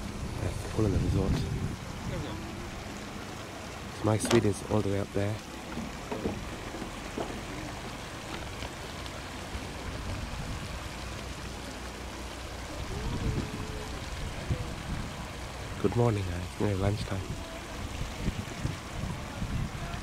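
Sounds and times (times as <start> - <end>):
water rushing over pool edge: 0.0 - 20.0.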